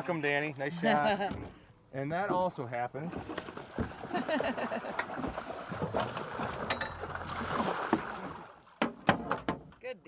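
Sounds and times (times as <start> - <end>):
fish splashing at surface: 5.0 - 8.8.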